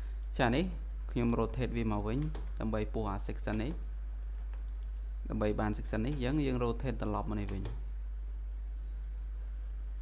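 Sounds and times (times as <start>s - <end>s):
low electrical hum: 0.0s - 10.0s
man talking: 0.4s - 3.8s, 5.2s - 7.8s
keyboard and mouse clicks: 3.4s - 5.0s, 9.5s - 9.8s.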